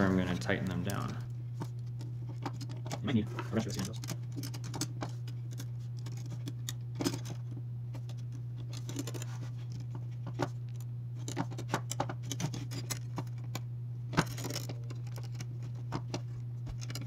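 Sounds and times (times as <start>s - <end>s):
steady low hum: 0.0s - 17.0s
screwdriver and metal parts clicking: 0.8s - 13.6s, 14.2s - 17.0s.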